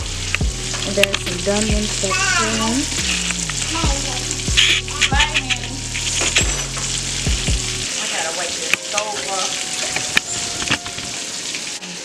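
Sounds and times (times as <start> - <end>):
music with deep bass beats: 0.0 - 7.9
patties sizzling in a frying pan: 0.0 - 12.0.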